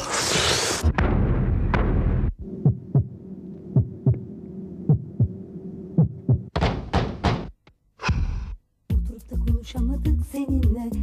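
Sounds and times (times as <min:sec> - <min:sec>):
heartbeat thumps: 0:01.0 - 0:08.3.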